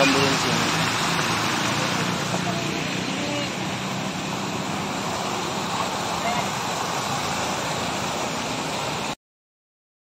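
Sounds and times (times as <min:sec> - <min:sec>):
fountain water splashing: 0:00.0 - 0:09.2.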